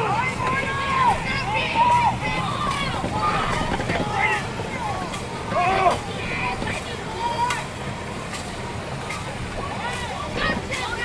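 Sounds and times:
distant shouting voices: 0.0 - 11.0
steady rush of noise: 0.0 - 11.0.

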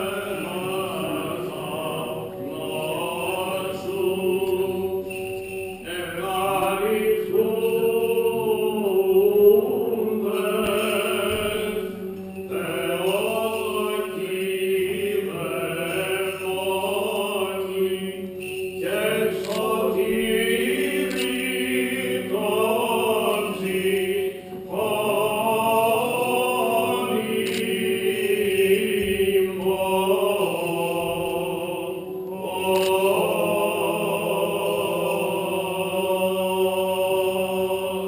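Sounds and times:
voices chanting slow melody: 0.0 - 38.0.

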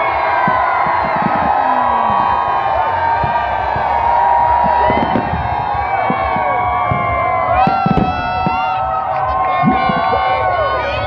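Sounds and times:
fireworks thuds: 0.0 - 10.6
crowd cheering and shouting: 0.0 - 11.0.

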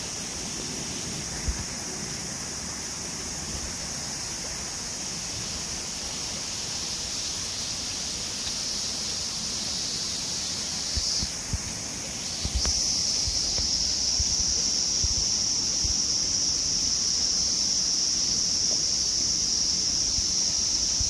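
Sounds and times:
cicadas buzzing: 0.0 - 21.0.

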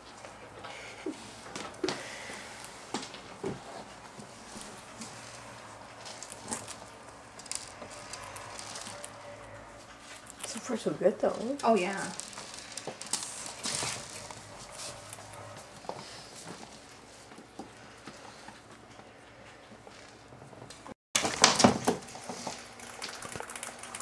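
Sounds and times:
rats chattering and scuffling: 1.5 - 16.9
rats scratching on wooden floor: 1.5 - 18.7.

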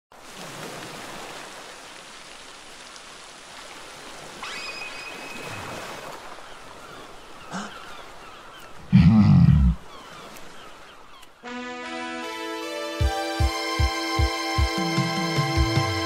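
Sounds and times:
steady rain falling: 0.4 - 4.4.

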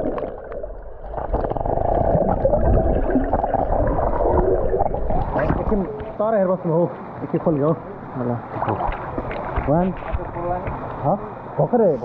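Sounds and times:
muffled underwater bubbles and gurgle: 0.0 - 6.2.

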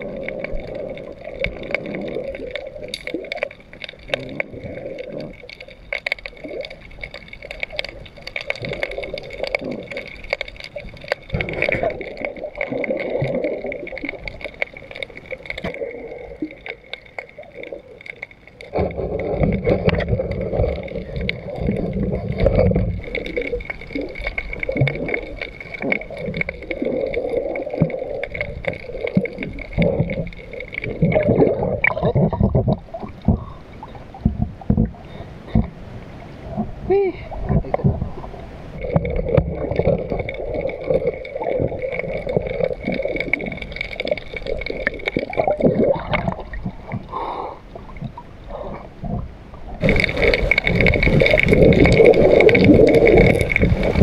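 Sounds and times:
sharp clicks and crackles: 0.0 - 35.8, 38.8 - 54.0
underwater water sloshing: 0.0 - 54.0
deep rushing of water: 49.7 - 54.0.

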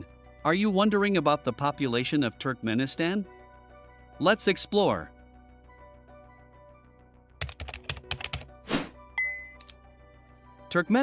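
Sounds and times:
soft background music: 0.0 - 11.0
keyboard typing: 7.4 - 8.5.

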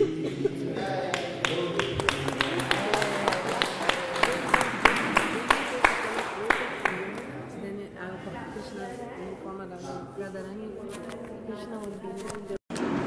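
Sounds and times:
person chanting: 0.0 - 7.2
rhythmic hand-clapping: 0.8 - 7.4.

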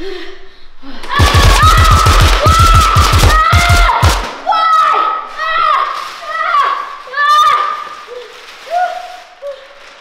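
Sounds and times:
children yelling and shrieking: 1.0 - 9.6.

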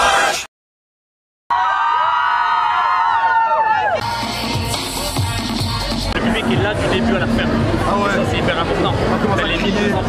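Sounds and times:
young people screaming and cheering: 1.5 - 6.0.

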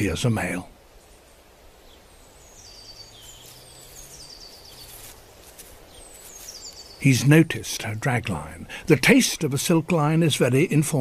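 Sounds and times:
small bird singing: 0.0 - 8.6.

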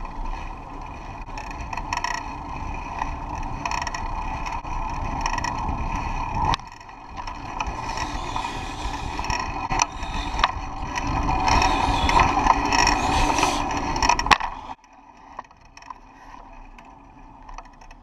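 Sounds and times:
road and wind rumble: 0.0 - 18.0
squeaky bicycle pedal: 1.4 - 14.8.

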